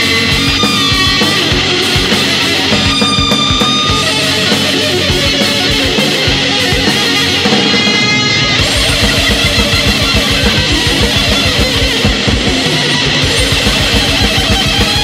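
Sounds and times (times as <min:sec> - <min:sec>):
distorted electric guitars: 0:00.0 - 0:15.0
fast drums with rapid kick drum: 0:00.0 - 0:15.0
high lead guitar line: 0:00.0 - 0:15.0.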